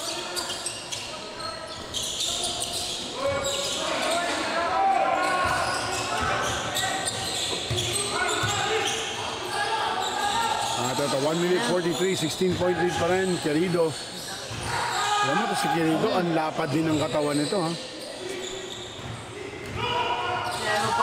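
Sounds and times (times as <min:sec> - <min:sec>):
sneaker squeaks: 0:00.0 - 0:21.0.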